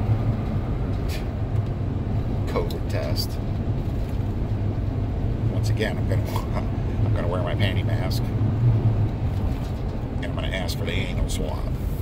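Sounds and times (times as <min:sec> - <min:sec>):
car engine rumble: 0:00.0 - 0:12.0
road noise inside car: 0:00.0 - 0:12.0.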